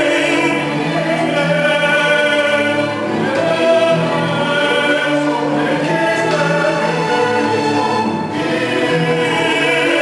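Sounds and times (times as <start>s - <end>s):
choir singing sacred music: 0.0s - 10.0s
low string ensemble: 0.0s - 10.0s.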